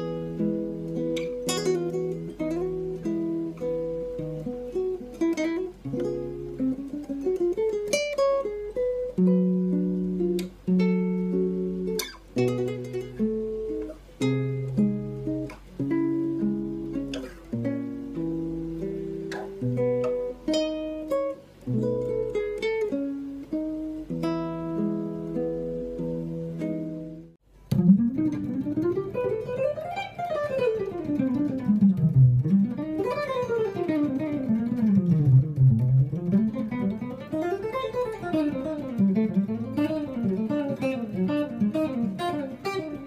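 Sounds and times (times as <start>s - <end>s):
fingerstyle acoustic guitar: 0.0s - 43.0s.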